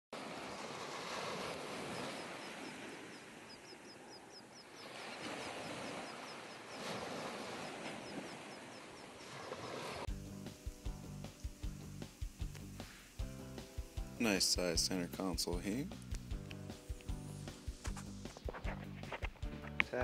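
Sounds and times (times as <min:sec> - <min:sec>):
surf washing up a beach: 0:00.2 - 0:15.9
bird chirping: 0:01.9 - 0:06.8, 0:07.6 - 0:09.4.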